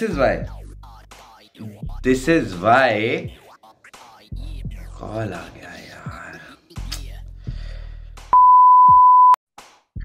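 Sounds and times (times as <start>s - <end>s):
electronic beep: 8.4s - 9.4s.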